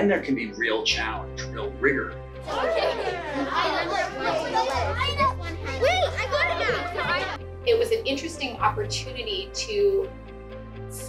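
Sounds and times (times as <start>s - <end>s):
background music: 0.0s - 11.0s
children talking over one another: 2.4s - 7.4s.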